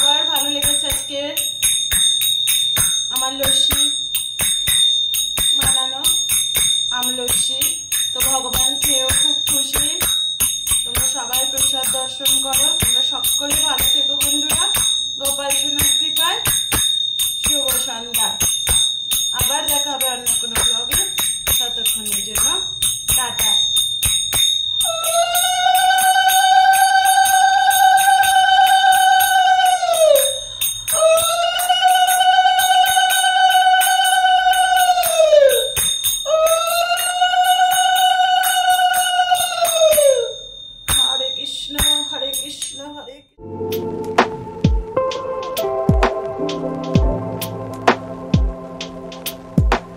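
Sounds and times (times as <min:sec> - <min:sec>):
hand bell ringing: 0:00.0 - 0:43.3.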